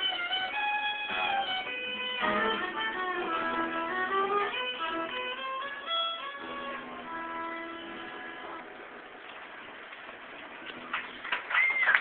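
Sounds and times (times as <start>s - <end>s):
audience applauding: 9.8s - 12.0s.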